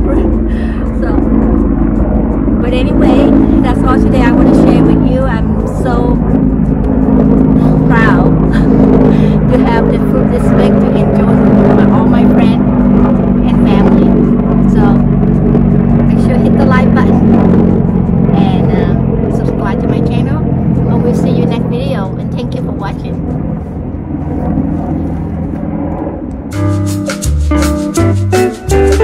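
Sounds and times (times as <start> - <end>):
people talking: 0.0 - 1.5, 2.6 - 6.4, 7.5 - 15.2, 16.0 - 17.7, 18.3 - 23.2
low mechanical hum: 0.0 - 26.6.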